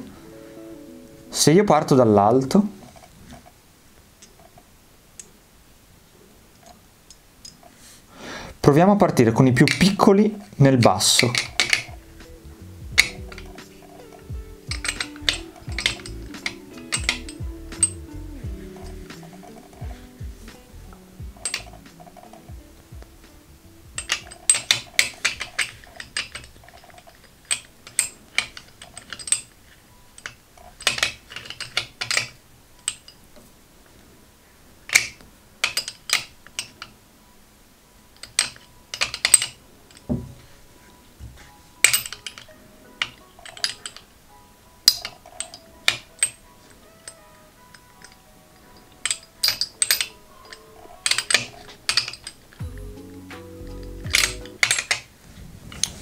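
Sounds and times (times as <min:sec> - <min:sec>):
faint background music: 0:00.0 - 0:56.0
metal balls clicking: 0:09.4 - 0:33.3, 0:34.8 - 0:37.0, 0:38.2 - 0:40.3, 0:41.8 - 0:56.0
balls knocking on wooden tray: 0:40.1 - 0:40.5.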